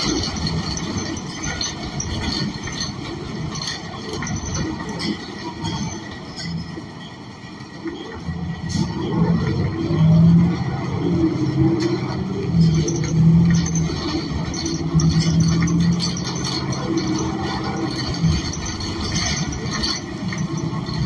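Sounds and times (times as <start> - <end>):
bus engine droning: 0.0 - 21.0
road noise: 0.0 - 21.0.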